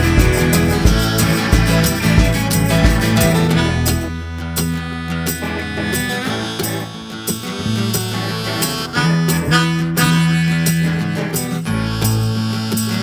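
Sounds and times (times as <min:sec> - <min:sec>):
tambourine strikes: 0:00.0 - 0:04.1
electric guitar: 0:00.0 - 0:13.0
held bass notes: 0:00.0 - 0:13.0.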